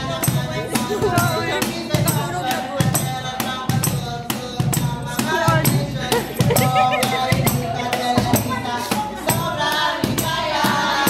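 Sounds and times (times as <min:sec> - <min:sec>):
cajon played by hand: 0:00.0 - 0:11.0
person singing: 0:00.0 - 0:11.0.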